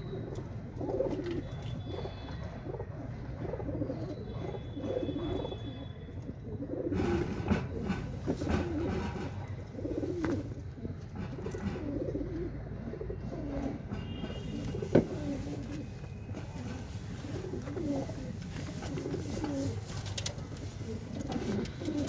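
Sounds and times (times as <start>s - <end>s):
pigeons cooing: 0.0s - 22.0s
rustling and sharp clicks: 18.2s - 22.0s.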